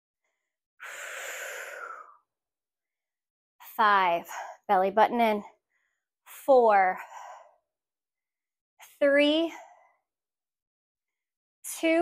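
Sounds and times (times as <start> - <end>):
woman's forceful exhale: 0.8 - 2.2.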